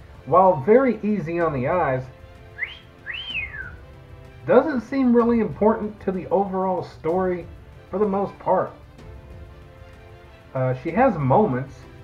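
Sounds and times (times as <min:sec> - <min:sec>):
wolf whistle: 0:02.5 - 0:03.8.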